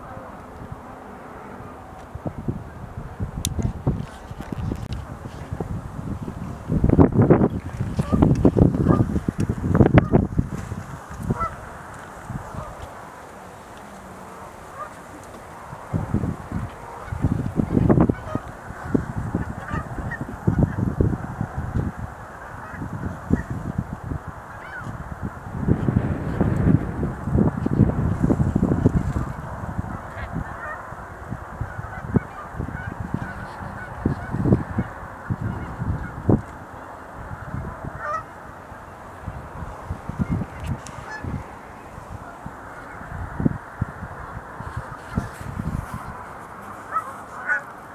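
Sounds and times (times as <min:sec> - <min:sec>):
wind thumping on microphone: 0:01.6 - 0:47.9
steady background hiss: 0:08.2 - 0:20.5
sandhill cranes calling: 0:11.0 - 0:15.9, 0:16.6 - 0:20.9, 0:24.4 - 0:25.2, 0:37.4 - 0:38.4, 0:40.2 - 0:41.4, 0:44.8 - 0:47.8.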